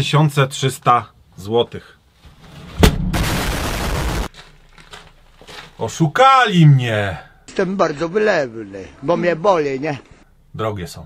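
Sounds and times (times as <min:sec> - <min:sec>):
harsh even noise: 0:02.7 - 0:04.3
sharp crack: 0:02.7 - 0:05.1.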